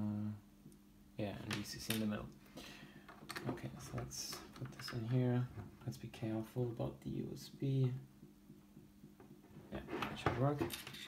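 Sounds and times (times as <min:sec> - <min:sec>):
faint electrical hum: 0:00.0 - 0:11.0
person speaking: 0:01.2 - 0:08.2, 0:09.6 - 0:11.0.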